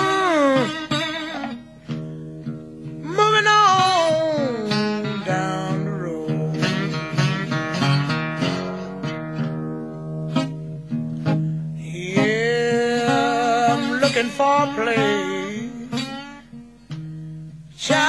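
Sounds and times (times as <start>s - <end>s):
person singing: 0.0s - 1.0s, 3.0s - 7.8s, 11.8s - 16.2s, 17.8s - 18.0s
blues band playing: 0.0s - 16.1s
blues guitar with bent notes: 0.0s - 18.0s.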